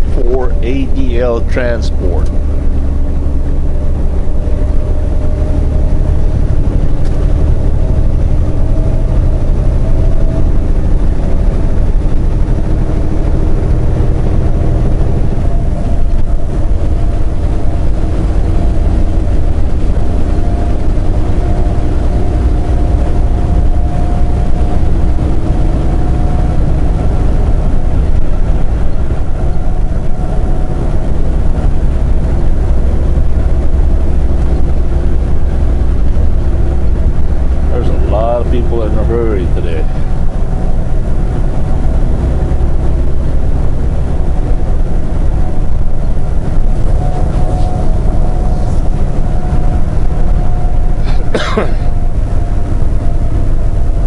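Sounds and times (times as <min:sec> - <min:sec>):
diesel engine rumble: 0:00.0 - 0:54.0
road noise: 0:00.0 - 0:54.0.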